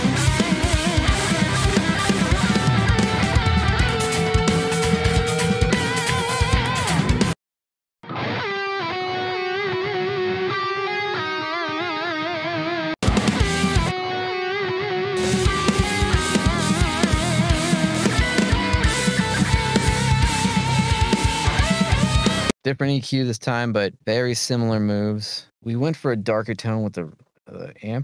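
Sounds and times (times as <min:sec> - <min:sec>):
distorted electric lead guitar: 0:00.0 - 0:07.4, 0:08.0 - 0:22.5
drums and band playing: 0:00.0 - 0:07.4, 0:13.0 - 0:13.9, 0:15.2 - 0:22.5.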